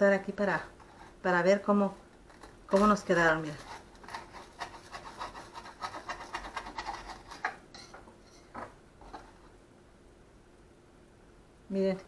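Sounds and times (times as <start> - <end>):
knife sawing through toasted bread: 3.1 - 7.6.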